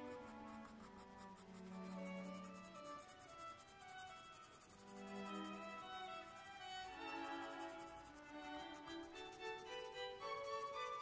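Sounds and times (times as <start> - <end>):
pencil scratching on paper: 0.0 - 11.0
soft background music: 0.0 - 11.0.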